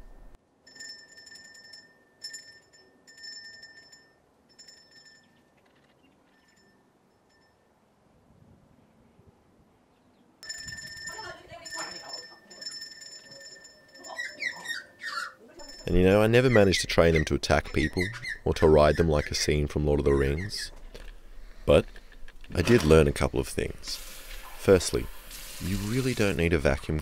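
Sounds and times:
small hand bell ringing: 10.4 - 14.8, 15.6 - 16.1.

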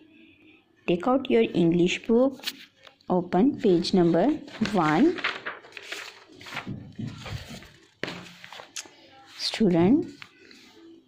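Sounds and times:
paper pages rustling: 3.6 - 11.0.

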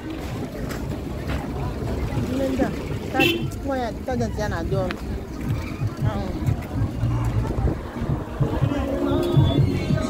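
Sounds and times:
people talking: 0.0 - 10.0
wind rumble on microphone: 0.0 - 10.0.

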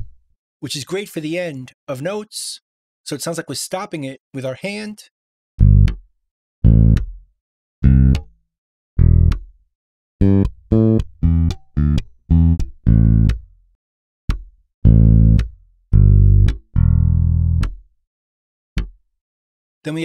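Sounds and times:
bass guitar short low notes: 7.8 - 8.2, 10.2 - 13.4, 14.9 - 15.4, 16.0 - 17.7.

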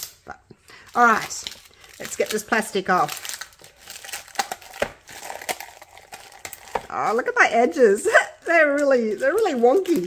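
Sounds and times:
plastic film crinkling: 0.0 - 10.0.

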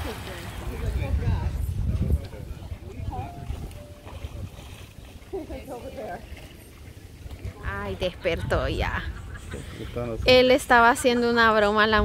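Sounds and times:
faint distant voices: 0.0 - 11.2
wind rumbling on microphone: 0.0 - 12.0.

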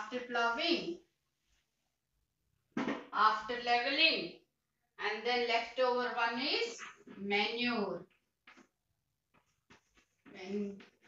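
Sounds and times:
woman speaking: 0.0 - 1.0, 5.0 - 8.0.

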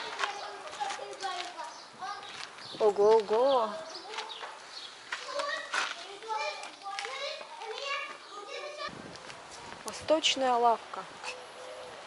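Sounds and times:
distant children calling and chattering: 0.0 - 12.0.

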